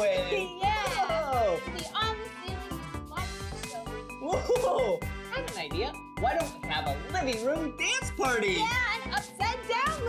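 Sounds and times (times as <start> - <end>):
upbeat music with steady beat: 0.0 - 10.0.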